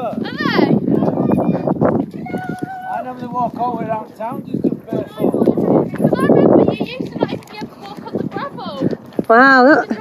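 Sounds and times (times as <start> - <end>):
camel walking in soft sand: 0.0 - 10.0.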